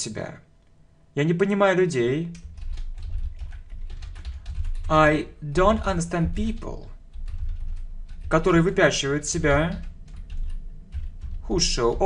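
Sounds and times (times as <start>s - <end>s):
computer keyboard typing: 2.3s - 12.0s.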